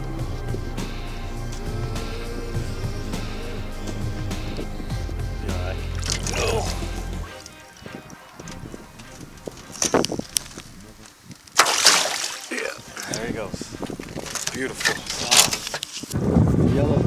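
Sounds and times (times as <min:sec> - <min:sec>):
background music: 0:00.0 - 0:11.0, 0:11.6 - 0:15.5
water sloshing against boat: 0:10.4 - 0:15.9
loud water splash: 0:11.6 - 0:12.8.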